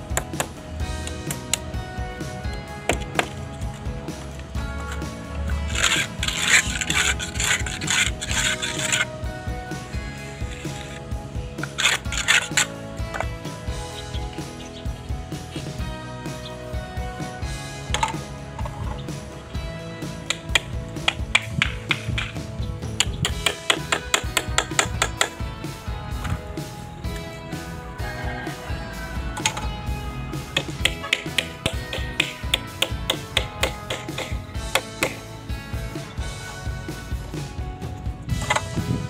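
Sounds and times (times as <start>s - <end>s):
background music: 0.0s - 39.0s
float scraping cement render: 2.9s - 9.2s, 10.4s - 13.3s
hammer tapping on wood: 23.0s - 25.4s, 30.6s - 35.2s.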